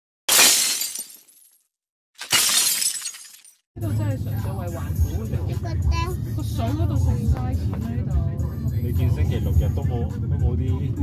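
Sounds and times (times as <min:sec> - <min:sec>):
glass shattering: 0:00.3 - 0:01.6, 0:02.2 - 0:03.6.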